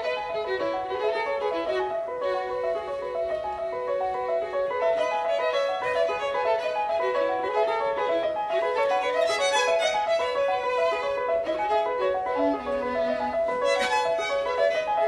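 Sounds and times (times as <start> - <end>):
grand piano: 0.0 - 15.0
violin playing quick melody: 4.8 - 15.0.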